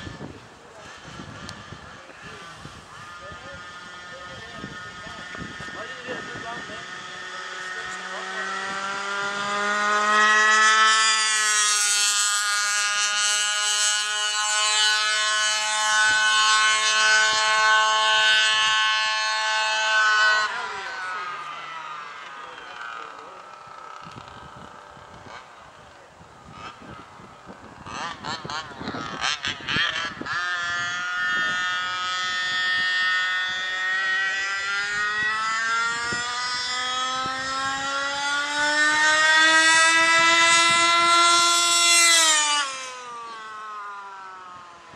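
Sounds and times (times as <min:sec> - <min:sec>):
small two-stroke engine whining: 0:00.0 - 0:44.9.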